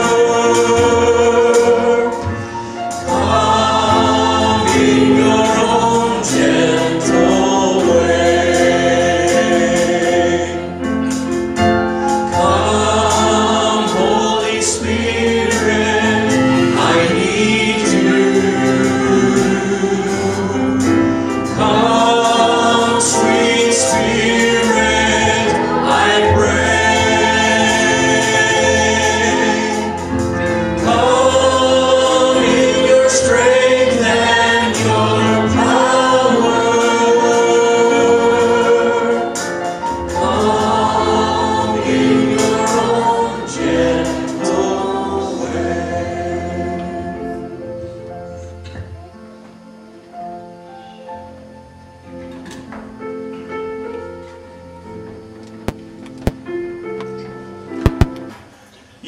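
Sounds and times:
men singing a hymn: 0.0s - 11.3s, 12.0s - 48.0s
keyboard accompaniment: 0.0s - 59.0s.

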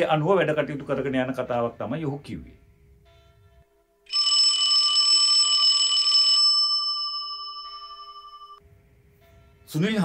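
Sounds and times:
high ringing tones: 3.0s - 9.7s.

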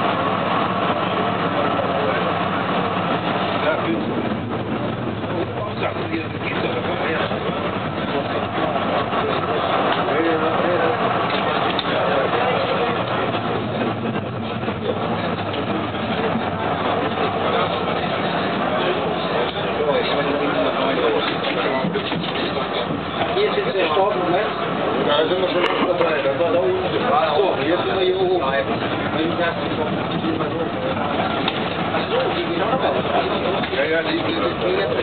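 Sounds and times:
people talking: 0.0s - 35.0s
tram rolling rumble: 0.0s - 35.0s.

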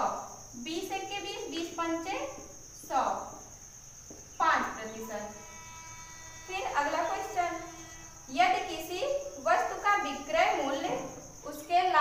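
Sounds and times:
woman talking: 8.3s - 12.0s.

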